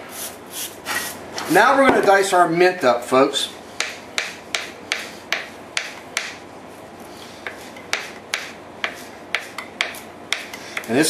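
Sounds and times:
knife chopping on plastic board: 7.5s - 10.9s.

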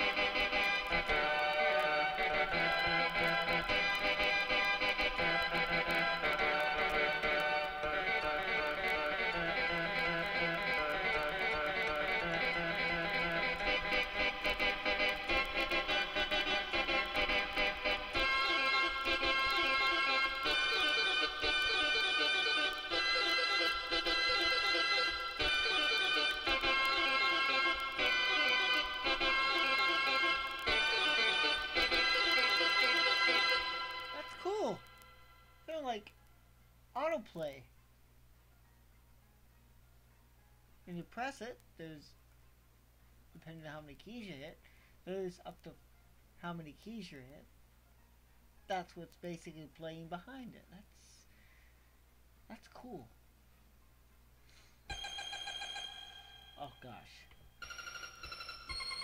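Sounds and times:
electronic keyboard notes and chords: 0.0s - 35.9s, 54.9s - 59.0s.

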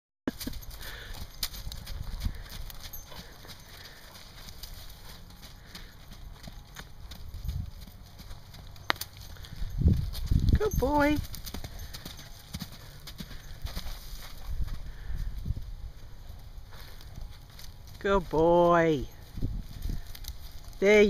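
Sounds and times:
hooves thudding on soft dirt: 0.3s - 21.0s.

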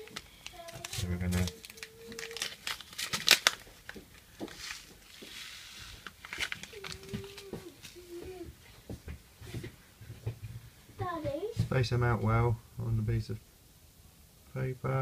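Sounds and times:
paper packet crinkling and tearing: 0.0s - 8.2s.

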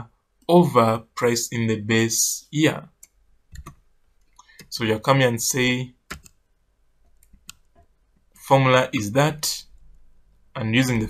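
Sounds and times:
computer mouse clicking: 3.0s - 4.7s, 6.1s - 6.4s, 7.1s - 7.9s.

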